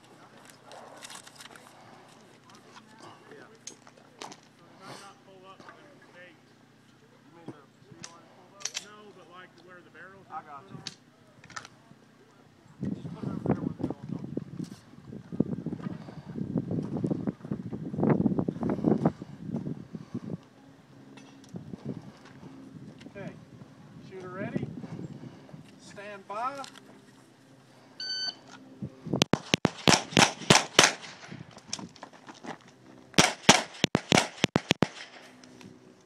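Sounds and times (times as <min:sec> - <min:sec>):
wind buffeting microphone: 0:12.8 - 0:25.8, 0:28.7 - 0:32.0
handgun shots: 0:29.3 - 0:31.2, 0:33.2 - 0:35.2.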